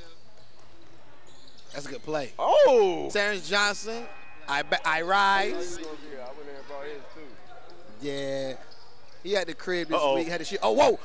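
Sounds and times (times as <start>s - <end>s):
basketball court sounds: 0.0s - 1.9s.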